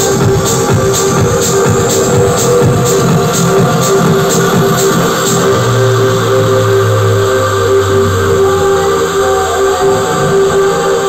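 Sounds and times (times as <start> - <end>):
deep bass note: 0.0 - 11.0
electronic dance music: 0.0 - 11.0
sustained synth chords: 0.0 - 11.0.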